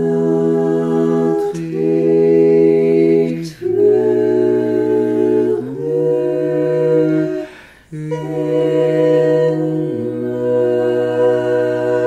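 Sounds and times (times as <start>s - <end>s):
a cappella vocal quartet: 0.0s - 12.0s.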